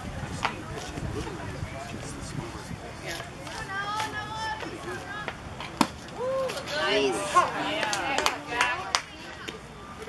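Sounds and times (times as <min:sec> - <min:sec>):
baseball impact smack: 0:05.8 - 0:06.0
spectators shouting and cheering: 0:06.1 - 0:08.9.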